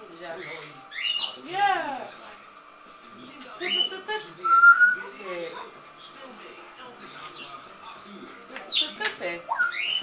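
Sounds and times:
puppies whining and squeaking: 0:00.3 - 0:01.4, 0:08.8 - 0:10.0.

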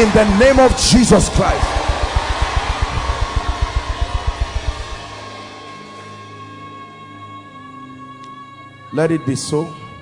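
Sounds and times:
steady wash of noise: 0:00.0 - 0:05.2
church worship music: 0:00.0 - 0:10.0
low drum thumps: 0:00.3 - 0:05.1.

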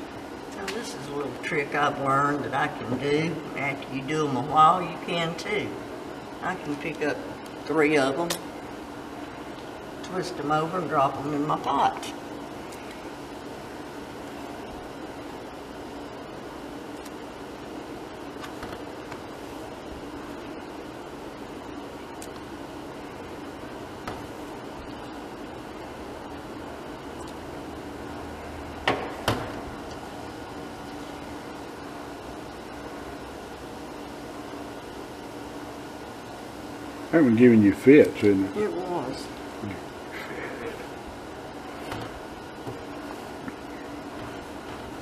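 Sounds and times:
kitchen hum and hiss: 0:00.0 - 0:45.0.

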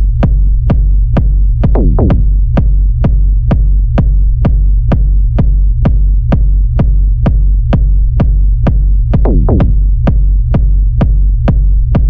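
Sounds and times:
low bass drone: 0:00.0 - 0:12.0
techno kick drum: 0:00.0 - 0:12.0.

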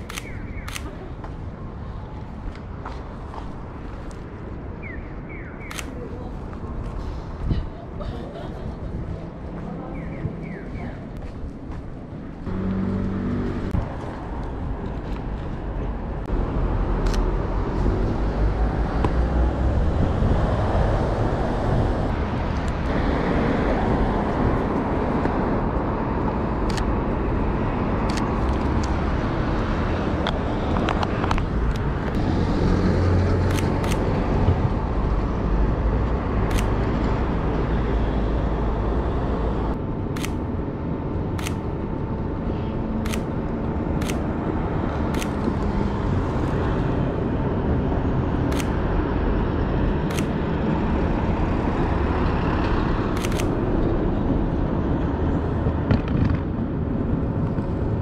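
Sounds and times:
camera shutter clicks: 0:00.0 - 0:01.0, 0:05.6 - 0:06.0, 0:33.5 - 0:34.1, 0:36.5 - 0:36.8, 0:40.2 - 0:40.5, 0:41.4 - 0:41.7, 0:43.0 - 0:43.4, 0:44.0 - 0:44.4, 0:45.1 - 0:45.6, 0:48.5 - 0:48.8, 0:50.1 - 0:50.4, 0:53.1 - 0:53.6
road traffic rumble: 0:00.0 - 0:58.0.

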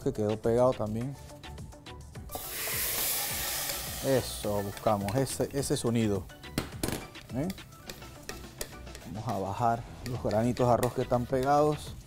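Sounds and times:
wooden spoon scraping metal pot: 0:07.5 - 0:11.0.

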